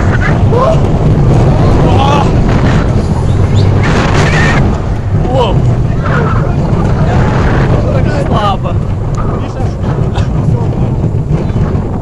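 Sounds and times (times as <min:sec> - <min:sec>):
roller coaster running on track: 0:00.0 - 0:12.0
wind buffeting microphone: 0:00.0 - 0:12.0.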